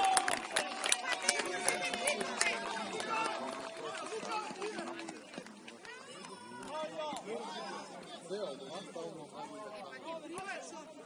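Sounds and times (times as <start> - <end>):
sharp claps: 0.0 - 7.2
spectators calling out and chattering: 0.0 - 11.0.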